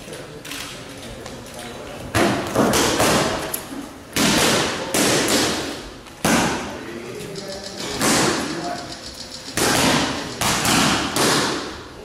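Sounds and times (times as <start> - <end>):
boxing gloves slapping focus mitts: 9.6 - 11.8.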